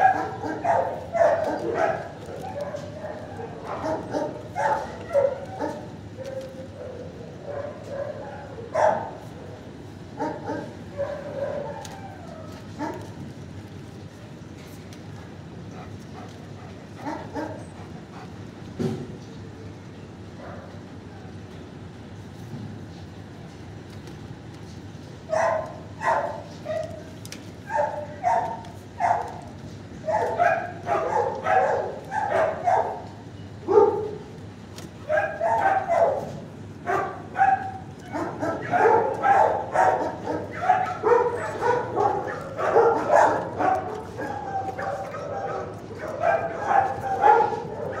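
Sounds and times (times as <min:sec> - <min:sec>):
dogs barking and yipping: 0:00.0 - 0:09.4, 0:10.0 - 0:13.3, 0:15.8 - 0:18.5, 0:25.2 - 0:48.0.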